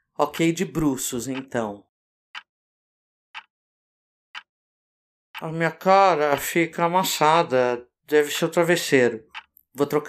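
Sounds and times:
clock ticking: 1.3s - 1.7s, 6.2s - 6.6s, 9.3s - 9.6s.

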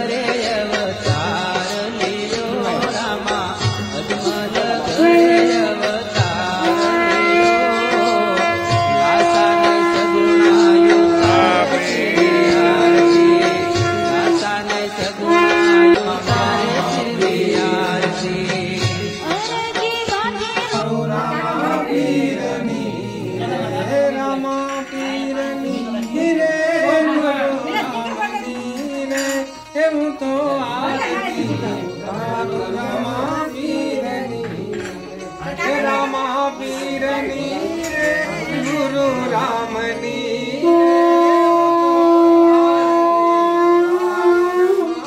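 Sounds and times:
voices singing a devotional song: 0.0s - 45.0s
conch shell blown: 4.8s - 18.2s, 40.5s - 45.0s.

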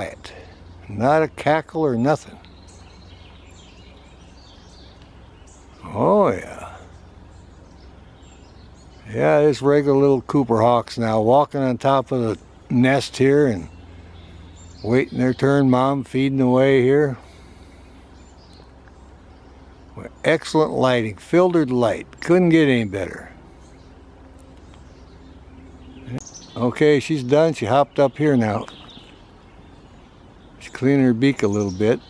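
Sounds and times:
steady low hum: 0.0s - 32.0s
man's voice: 5.8s - 6.9s.

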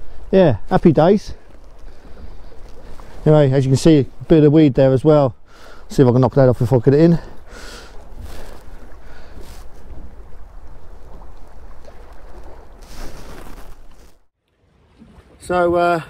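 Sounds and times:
sea noise: 0.0s - 16.0s
wind rumbling on microphone: 7.4s - 15.8s.

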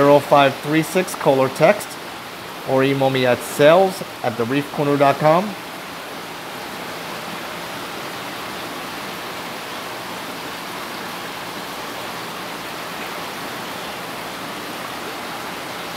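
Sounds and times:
aquarium water rushing: 0.0s - 15.9s.

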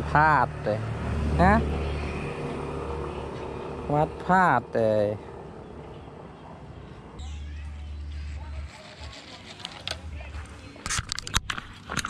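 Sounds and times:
man speaking: 0.0s - 1.7s, 3.9s - 5.2s.

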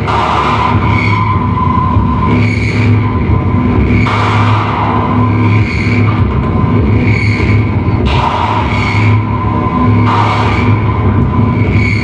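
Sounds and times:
pounding bass pulse: 0.0s - 12.0s.

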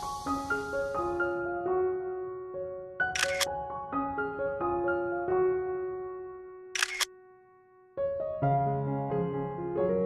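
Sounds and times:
calm instrumental music: 0.0s - 10.0s
crisp clicking sound effect: 3.2s - 3.5s, 6.8s - 7.1s.

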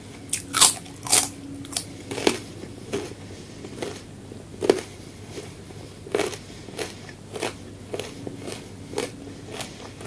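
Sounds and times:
mouth clicks and crunches: 0.3s - 4.9s
person chewing food: 0.3s - 10.0s.

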